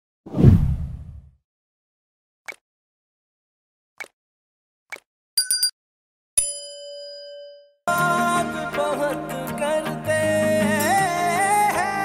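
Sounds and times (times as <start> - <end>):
deep whoosh: 0.3 - 1.3.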